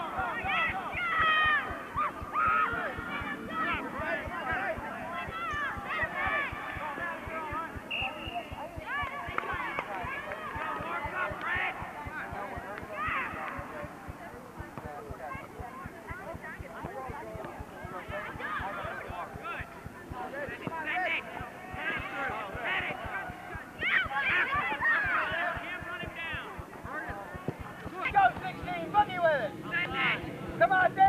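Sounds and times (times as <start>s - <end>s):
children shouting: 0.0s - 4.2s, 5.1s - 6.7s, 23.8s - 25.6s.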